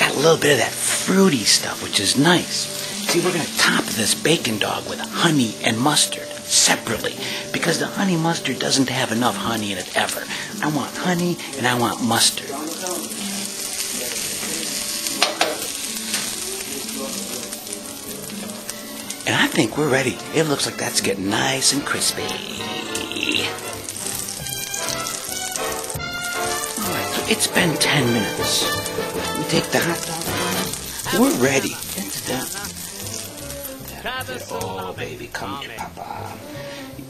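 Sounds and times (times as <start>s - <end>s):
background music: 0.0s - 37.0s
food sizzling in a frying pan: 0.0s - 37.0s.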